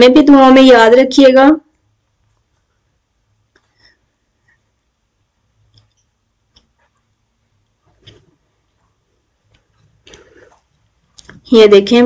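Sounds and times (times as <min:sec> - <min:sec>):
faint clicks: 0:05.7 - 0:07.0.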